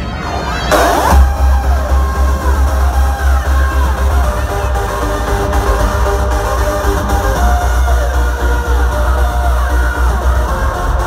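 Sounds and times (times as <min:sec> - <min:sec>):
hardstyle dance music: 0:00.7 - 0:11.0.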